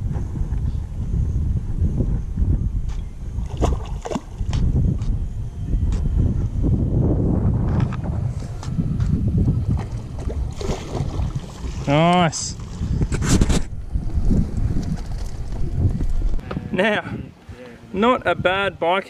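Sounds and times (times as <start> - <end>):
wind and water rumble: 0.0 - 19.0.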